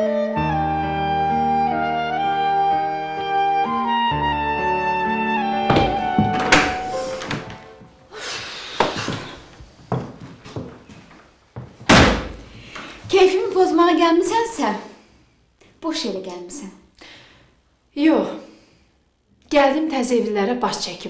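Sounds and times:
clarinet background music: 0.0s - 8.1s
door thuds and knocks: 5.7s - 7.7s, 11.8s - 12.5s
woman speaking: 13.1s - 15.0s, 15.8s - 16.9s, 17.9s - 18.5s, 19.5s - 21.0s.

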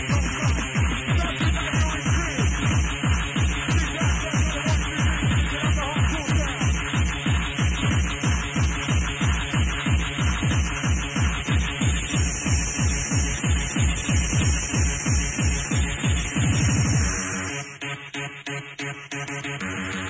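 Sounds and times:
kick drum: 0.0s - 17.4s
electronic rave dance music: 0.0s - 20.0s.

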